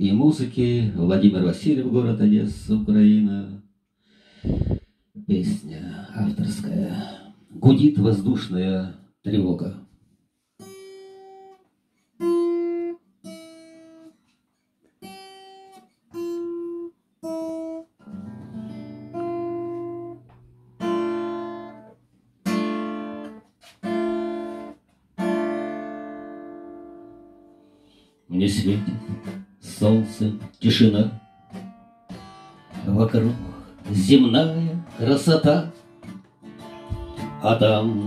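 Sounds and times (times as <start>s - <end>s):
acoustic guitar strumming chords: 15.0s - 38.0s.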